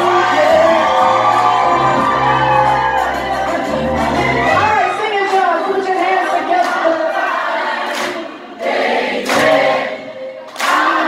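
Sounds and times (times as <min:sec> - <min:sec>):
live band music: 0:00.0 - 0:07.0
crowd singing along: 0:00.0 - 0:11.0.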